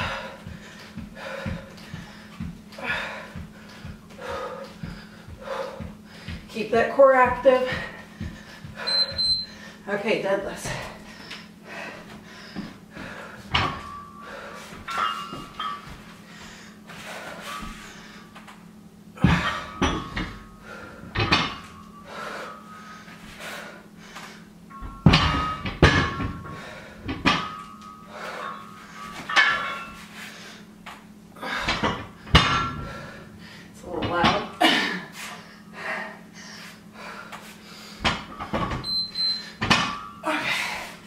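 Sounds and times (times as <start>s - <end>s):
barbell plates knocking and clinking: 13.0s - 16.1s, 19.2s - 22.7s, 24.7s - 30.0s, 31.6s - 33.3s, 38.0s - 40.3s.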